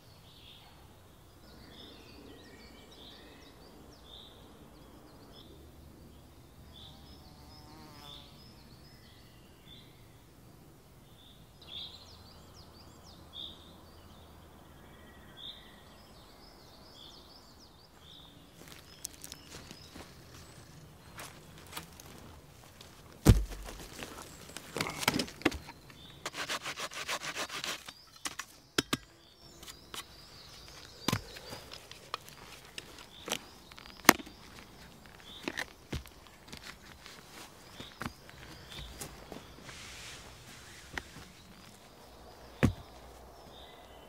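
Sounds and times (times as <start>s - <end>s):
quiet woodland ambience: 0.0s - 44.0s
insect buzzing past: 6.8s - 8.4s
wooden logs knocking: 23.2s - 26.5s, 42.6s - 42.9s
saw cutting through wood: 26.2s - 28.0s.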